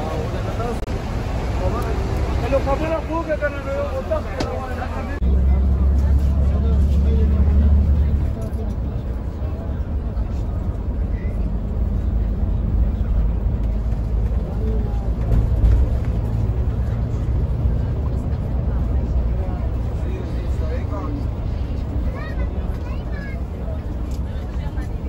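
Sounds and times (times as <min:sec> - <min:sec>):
bus engine rumble: 0:00.0 - 0:25.0
faint voices: 0:00.0 - 0:25.0
road noise: 0:00.0 - 0:25.0.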